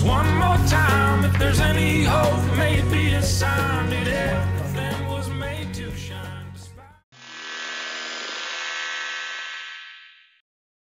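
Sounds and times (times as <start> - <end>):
electronic buzzing tone: 7.2 - 10.4.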